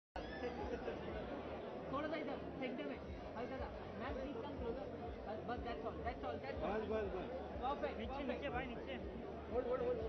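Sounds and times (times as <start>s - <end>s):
chatter of voices: 0.2s - 10.0s.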